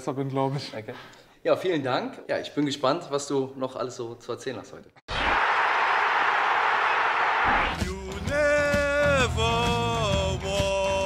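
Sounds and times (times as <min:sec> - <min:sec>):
man singing long notes: 0:07.7 - 0:11.0.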